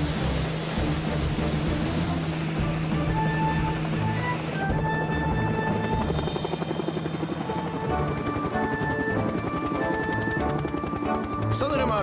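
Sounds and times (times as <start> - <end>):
background music: 0.0 - 12.0
helicopter rotor chopping: 0.0 - 12.0.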